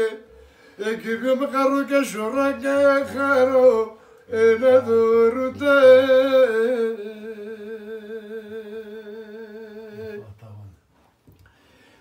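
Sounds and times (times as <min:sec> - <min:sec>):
old man singing unaccompanied: 0:00.0 - 0:10.4.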